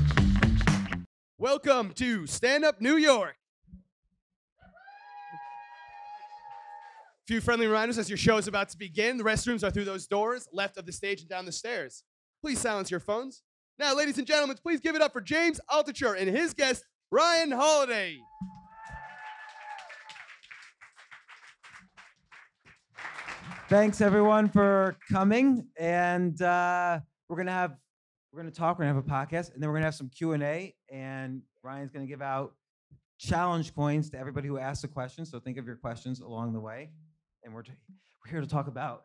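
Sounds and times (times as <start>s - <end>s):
audience applause: 4.9s - 7.1s, 18.6s - 25.1s.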